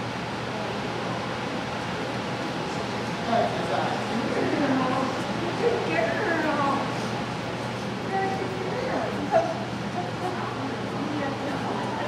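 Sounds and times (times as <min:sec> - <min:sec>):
murmur of voices: 0:00.3 - 0:12.0.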